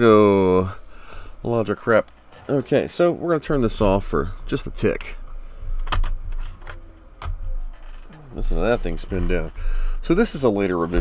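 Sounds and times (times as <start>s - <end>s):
hard drive winding down: 0.0s - 1.5s
low hum: 0.0s - 1.5s.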